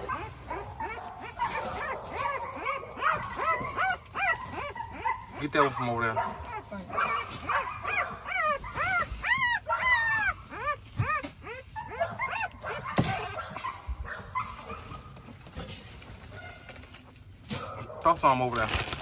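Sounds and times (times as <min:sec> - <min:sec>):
puppies whimpering and squealing: 0:00.0 - 0:17.4.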